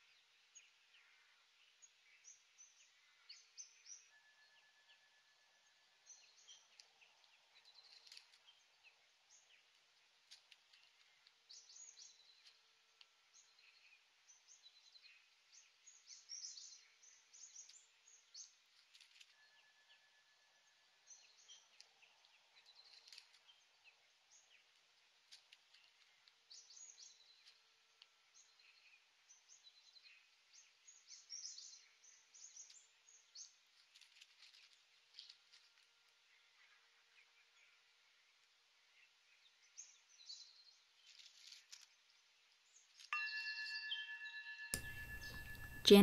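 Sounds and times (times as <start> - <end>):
birds chirping: 43.2 - 46.0.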